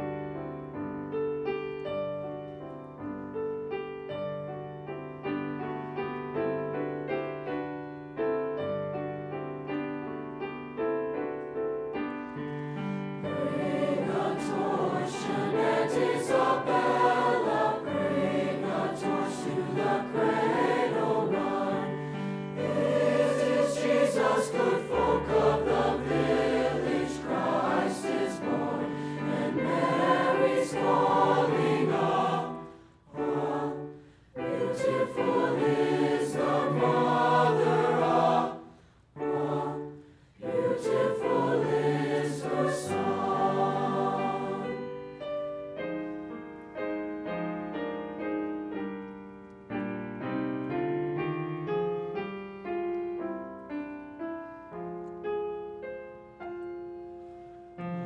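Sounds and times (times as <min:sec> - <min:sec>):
mixed choir singing: 0:13.1 - 0:45.1.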